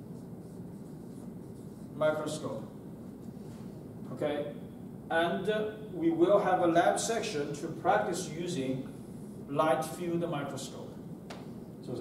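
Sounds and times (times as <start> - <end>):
marker writing on whiteboard: 0.0 - 2.0
low room hum: 0.0 - 12.0.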